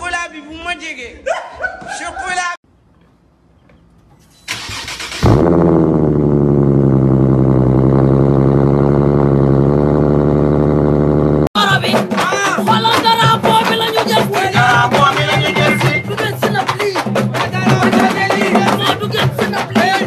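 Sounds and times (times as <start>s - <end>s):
motorcycle engine running: 5.2s - 11.5s
music: 11.6s - 20.0s.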